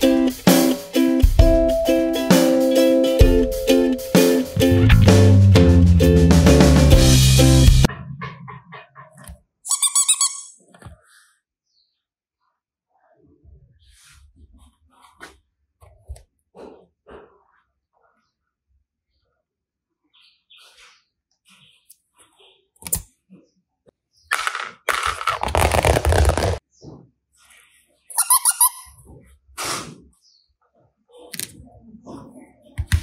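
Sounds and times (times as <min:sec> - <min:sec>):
high squeaky chirps: 0:09.7 - 0:10.7, 0:28.1 - 0:29.1
plastic toys clicking and crackling: 0:24.3 - 0:26.6.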